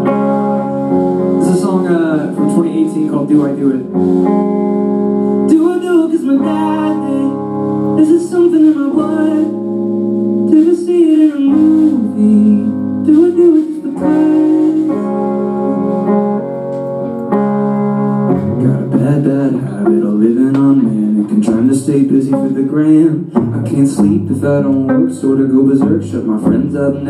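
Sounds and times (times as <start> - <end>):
guitar chords ringing: 0.0 - 27.0
man singing: 1.4 - 3.9, 5.5 - 9.6, 10.5 - 15.9, 18.4 - 27.0.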